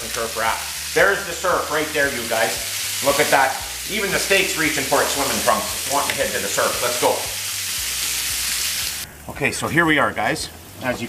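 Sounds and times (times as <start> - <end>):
meat sizzling in a pan: 0.0 - 9.0.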